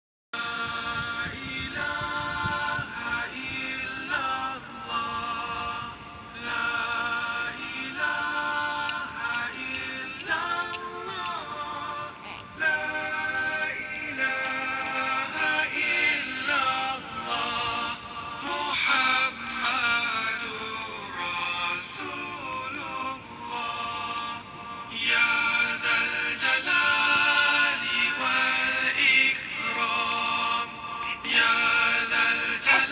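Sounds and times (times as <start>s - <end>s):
devotional chanting: 0.4s - 32.9s.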